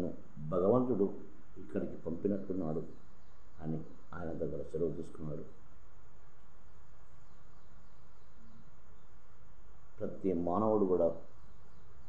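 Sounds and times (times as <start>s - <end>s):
high-pitched whine: 0.0s - 5.6s, 9.9s - 11.8s.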